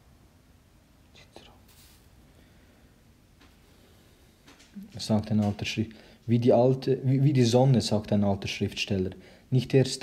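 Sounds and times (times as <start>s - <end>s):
low room hum: 0.0s - 10.0s
faint whispered sounds: 1.0s - 2.2s.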